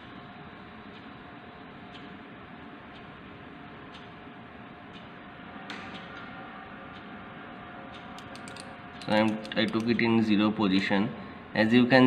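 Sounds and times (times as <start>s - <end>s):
micrometer ratchet clicks: 8.2s - 10.2s.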